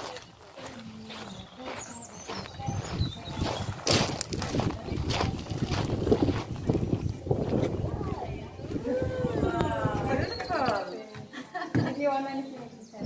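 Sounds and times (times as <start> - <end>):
low microphone rumble: 2.4 - 10.4
women calling out excitedly: 8.7 - 11.0.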